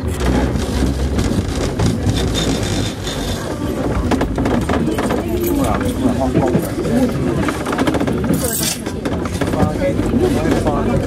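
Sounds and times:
train wheels rumbling on rails: 0:00.0 - 0:11.0
people talking: 0:03.2 - 0:11.0.

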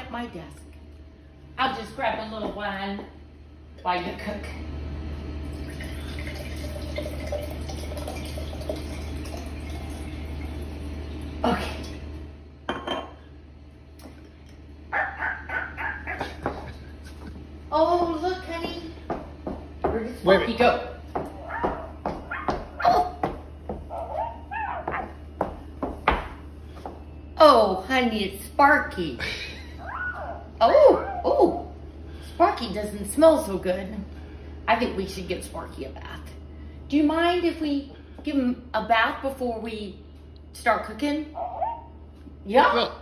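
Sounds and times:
wine pouring into a glass: 0:05.5 - 0:12.0.

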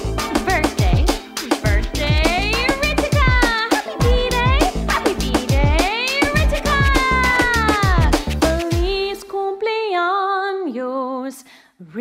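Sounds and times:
upbeat birthday song music: 0:00.0 - 0:09.6.

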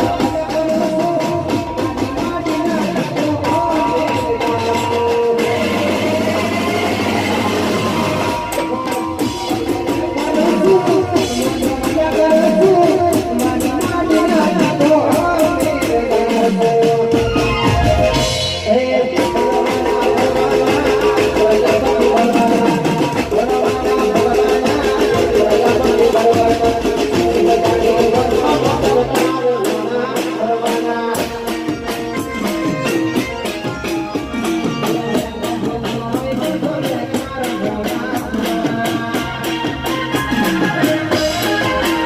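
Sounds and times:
live band music through loudspeakers: 0:00.0 - 0:42.0.

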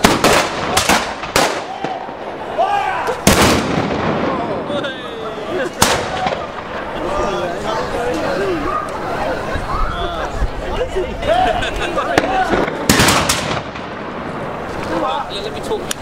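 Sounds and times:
muskets firing: 0:00.0 - 0:02.4, 0:03.2 - 0:04.8, 0:05.8 - 0:06.8, 0:12.2 - 0:14.4.

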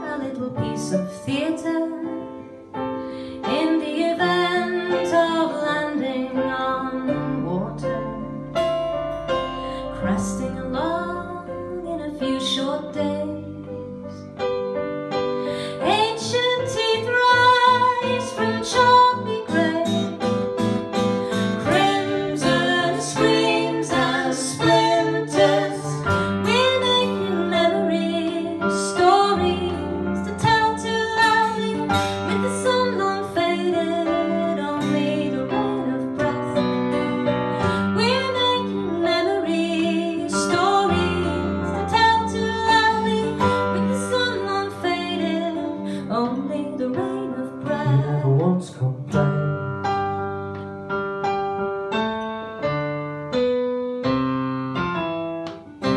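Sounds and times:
instrumental accompaniment: 0:00.0 - 0:55.9
person singing: 0:21.2 - 0:36.6, 0:37.8 - 0:49.4.

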